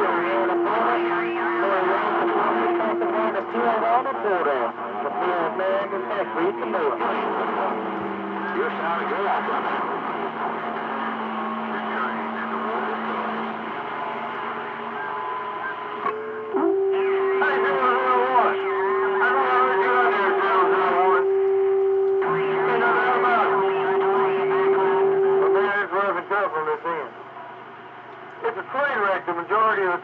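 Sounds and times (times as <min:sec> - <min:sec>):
radio whistling tones: 0:00.0 - 0:27.0
garbled radio voices: 0:00.0 - 0:27.1, 0:28.4 - 0:30.0.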